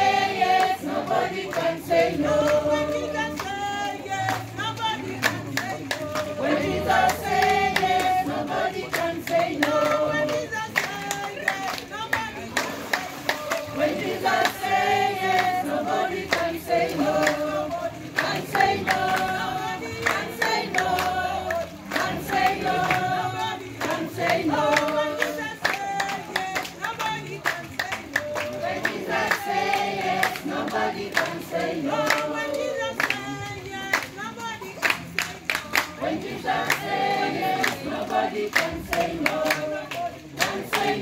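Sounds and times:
group singing worship song: 0.0 - 41.0
hand claps: 0.0 - 41.0.

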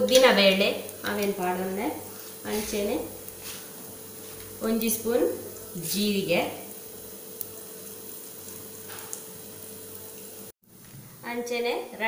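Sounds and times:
lentils sizzling in a pan: 0.0 - 12.0.

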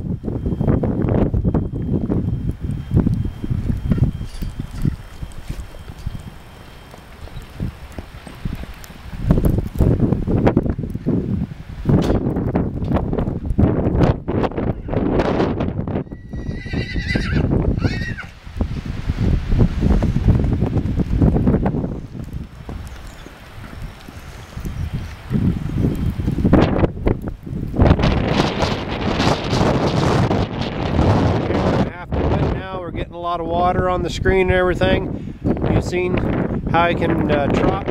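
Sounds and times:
hoofbeats on wet dirt: 6.9 - 9.9, 19.7 - 26.5
horse whinny: 16.0 - 18.4.

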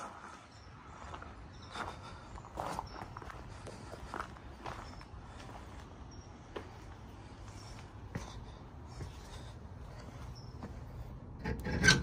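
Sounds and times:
footsteps on dirt: 0.0 - 11.0.

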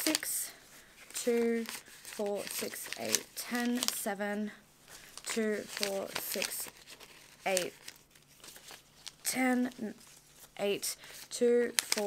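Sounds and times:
banknotes crinkling: 0.0 - 4.2, 4.9 - 12.0
woman counting under her breath: 1.2 - 4.7, 10.6 - 12.0.

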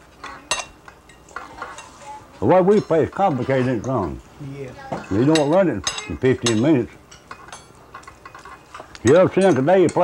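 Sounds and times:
cutlery clinking on dishes: 0.2 - 4.2, 4.9 - 10.0.

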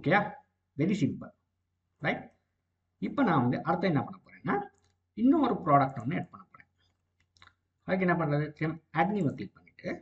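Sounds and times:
man speaking: 0.0 - 1.4, 2.0 - 2.4, 3.0 - 6.6, 7.8 - 10.0.

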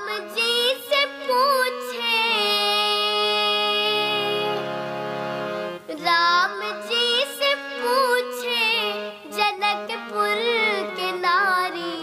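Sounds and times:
girl singing devotional song: 0.0 - 4.9, 5.8 - 12.0
harmonium: 0.0 - 12.0.

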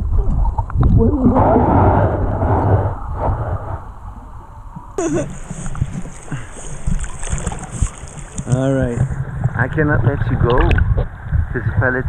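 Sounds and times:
muffled underwater rushing and bubbling: 0.0 - 12.0
flowing river current hiss: 5.0 - 9.2
water splashing: 5.0 - 11.3.

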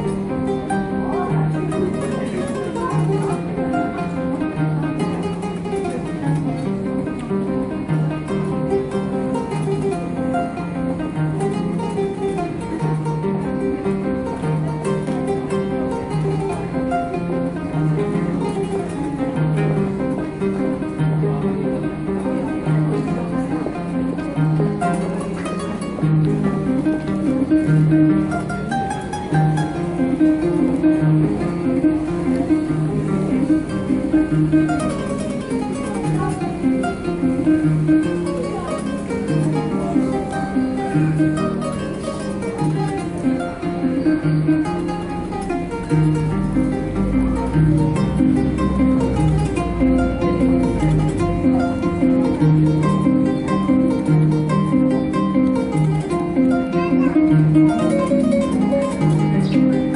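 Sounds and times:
kora harp plucked: 0.0 - 59.9.

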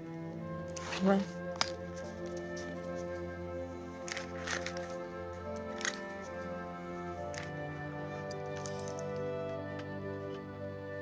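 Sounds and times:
soft background music: 0.0 - 11.0
coin purse clicks and rustles: 0.7 - 3.2, 4.0 - 6.6, 7.2 - 9.4.

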